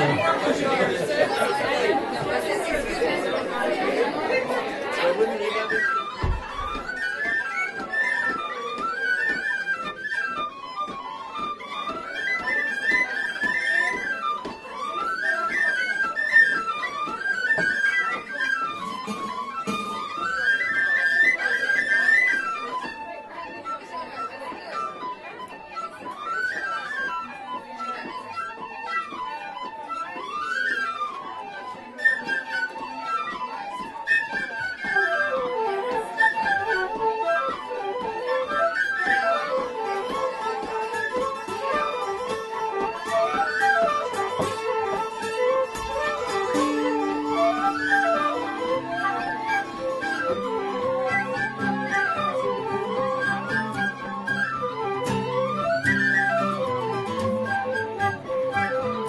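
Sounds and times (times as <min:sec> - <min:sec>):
crowd chatter in a pub: 0:00.0 - 0:59.0
tin whistles playing a folk tune: 0:00.0 - 0:59.0.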